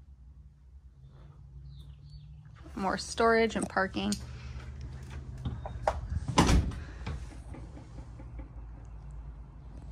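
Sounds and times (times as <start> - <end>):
door shutting with a thud: 6.2 - 7.0.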